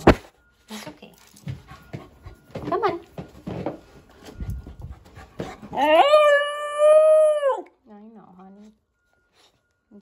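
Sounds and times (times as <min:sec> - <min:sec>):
puppy yodelling howl: 0:05.8 - 0:07.8.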